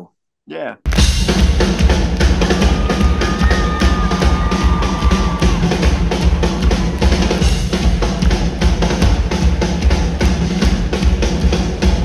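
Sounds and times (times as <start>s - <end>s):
drum kit solo: 0.9s - 12.0s.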